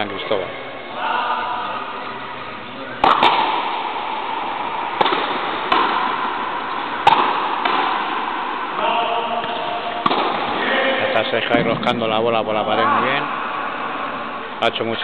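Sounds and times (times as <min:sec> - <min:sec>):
ball struck by rackets: 0:03.0 - 0:10.6.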